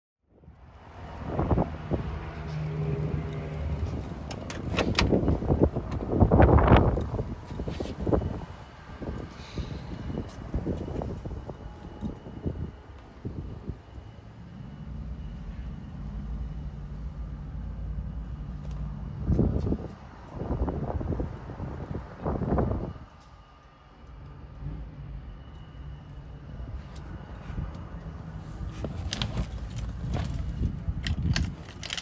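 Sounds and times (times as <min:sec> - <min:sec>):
wind gusting on microphone: 0:00.4 - 0:14.0, 0:19.0 - 0:23.2
handling clicks and knocks: 0:28.8 - 0:32.0.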